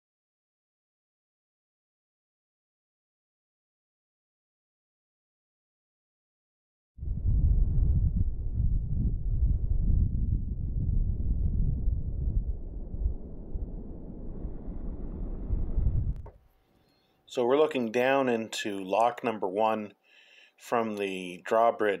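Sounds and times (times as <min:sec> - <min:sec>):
wind buffeting microphone: 0:07.0 - 0:16.3.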